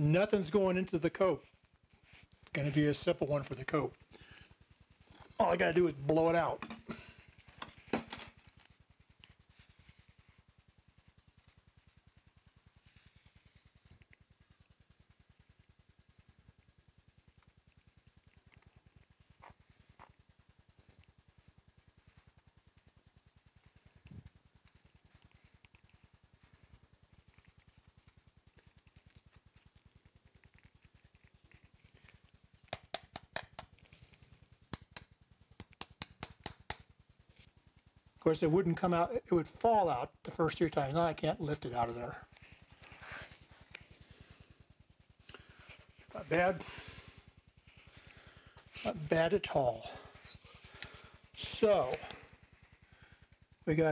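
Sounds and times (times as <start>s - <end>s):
spoon tapping sharp ticks: 32.7s - 33.7s, 34.7s - 36.8s.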